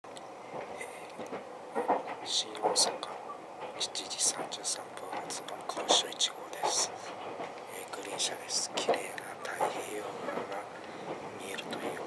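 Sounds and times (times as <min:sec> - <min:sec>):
train cabin running noise: 0:00.1 - 0:12.0
man speaking: 0:02.3 - 0:03.1, 0:03.8 - 0:07.1, 0:07.7 - 0:10.7, 0:11.4 - 0:12.0.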